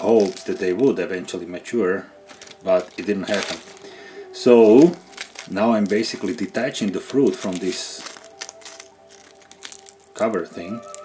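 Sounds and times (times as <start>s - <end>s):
dry husks crackling and tearing: 0.0s - 1.0s, 2.2s - 11.0s
faint background music: 0.0s - 11.0s.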